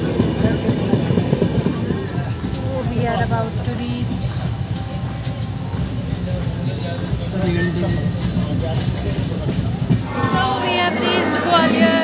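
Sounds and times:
faint voices: 0.0 - 12.0
train rumble with wheel clatter: 0.0 - 12.0.

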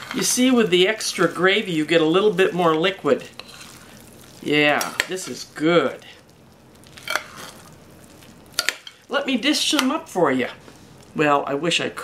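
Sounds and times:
metal spoon scraping rice: 0.0 - 1.6, 3.3 - 4.0, 6.9 - 7.7.

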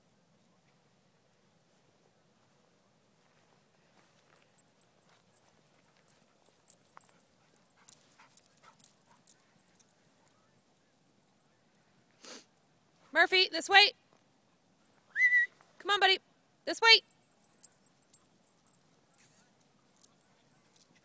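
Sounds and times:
short breathy burst: 12.2 - 12.5.

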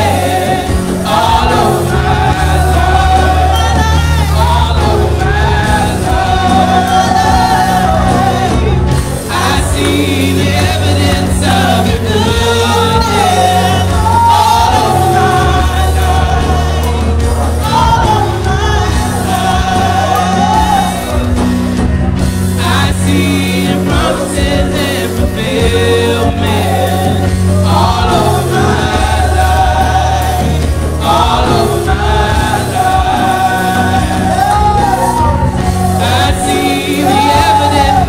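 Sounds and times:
steady bass line: 0.0 - 38.0
voices singing gospel song: 0.0 - 38.0.

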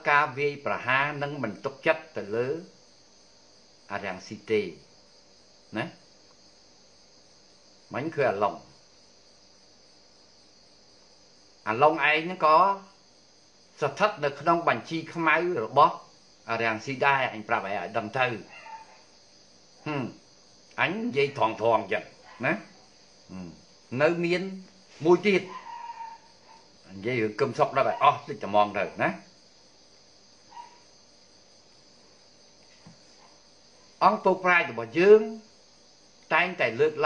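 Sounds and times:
man talking: 0.0 - 2.7, 3.9 - 4.8, 5.7 - 6.0, 7.9 - 8.7, 11.7 - 12.9, 13.8 - 18.5, 19.8 - 20.2, 20.8 - 22.7, 23.3 - 25.6, 26.9 - 29.3, 34.0 - 35.5, 36.3 - 37.0
crickets chirring: 0.0 - 37.0.

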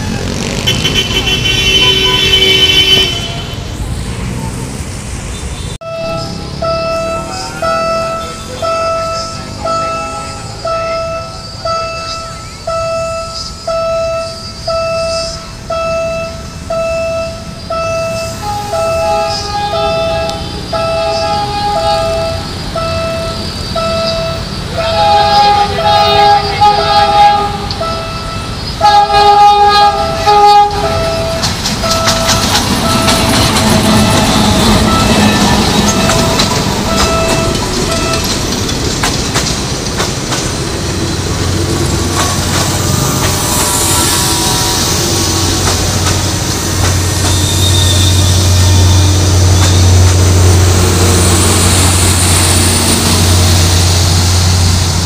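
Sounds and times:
train wheels rumbling over rails: 0.0 - 5.7, 6.3 - 55.0
train horn blasts: 0.4 - 3.7, 5.8 - 38.4, 42.1 - 54.9
level-crossing warning bell: 5.8 - 39.0, 40.5 - 55.0.

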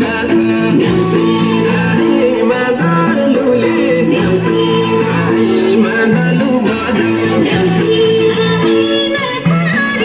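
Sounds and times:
folk song singing voice: 0.0 - 10.0
instrumental accompaniment: 0.0 - 10.0.

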